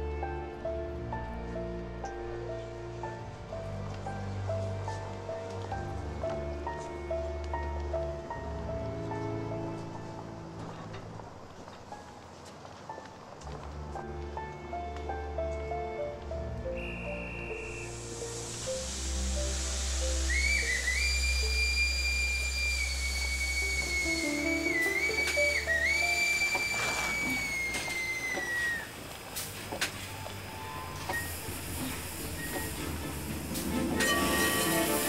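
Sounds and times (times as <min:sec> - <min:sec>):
background music: 0:00.0 - 0:35.0
steam locomotive whistle: 0:16.8 - 0:29.0, 0:30.6 - 0:35.0
hiss of steam: 0:17.0 - 0:35.0.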